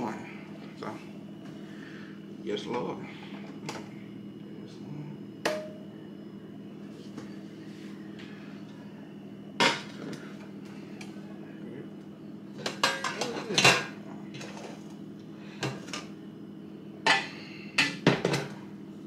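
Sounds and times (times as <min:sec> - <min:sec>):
metal cookware clanking: 0:12.6 - 0:14.6.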